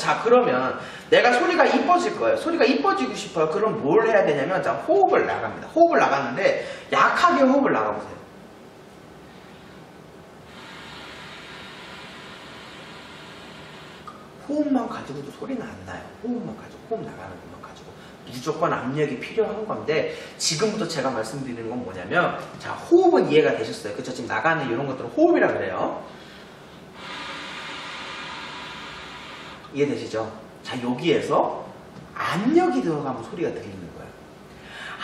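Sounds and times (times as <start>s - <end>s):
breath blown through saxophone: 9.3s - 14.2s, 26.1s - 29.7s.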